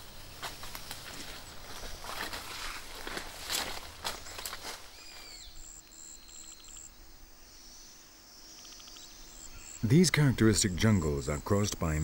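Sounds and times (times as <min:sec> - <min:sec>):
leaves and twigs crackling: 0:00.0 - 0:05.9.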